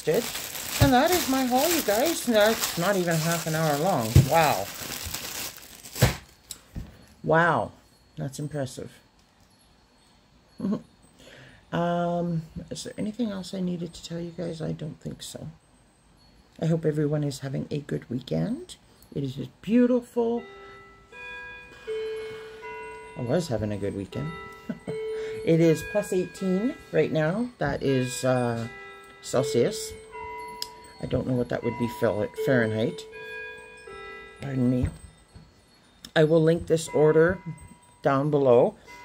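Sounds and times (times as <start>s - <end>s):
mantel clock chiming: 0.0s - 5.7s, 6.3s - 39.0s
plastic packaging crinkling: 0.0s - 6.6s.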